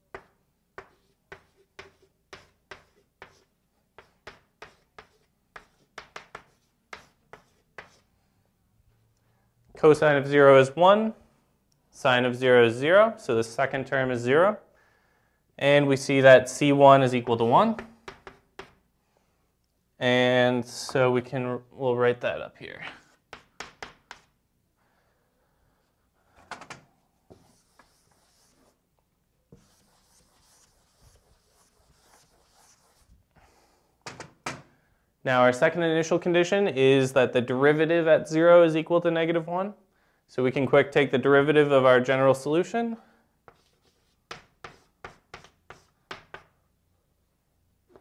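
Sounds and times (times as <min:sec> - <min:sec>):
pen scratching while writing: 0:00.2 - 0:08.0, 0:27.3 - 0:28.7, 0:29.5 - 0:33.1, 0:43.5 - 0:45.9.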